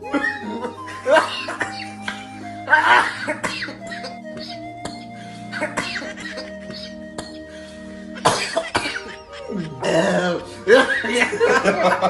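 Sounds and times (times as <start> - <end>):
background music: 0.0 - 12.0
man coughing: 1.1 - 1.9, 2.8 - 4.5, 5.6 - 6.5, 8.2 - 11.6.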